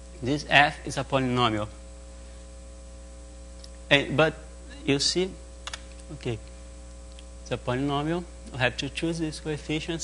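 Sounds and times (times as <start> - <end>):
electrical hum: 0.0 - 10.0
man saying uh: 3.9 - 5.4.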